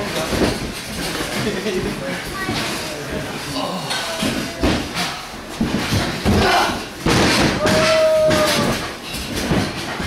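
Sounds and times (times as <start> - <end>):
thuds on a wrestling mat: 4.3 - 10.0
people shouting: 6.2 - 9.0.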